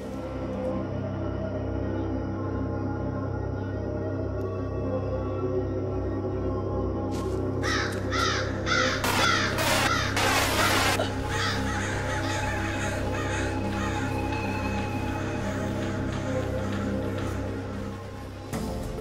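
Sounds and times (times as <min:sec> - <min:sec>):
low ominous music drone: 0:00.0 - 0:19.0
crows cawing: 0:07.6 - 0:18.3.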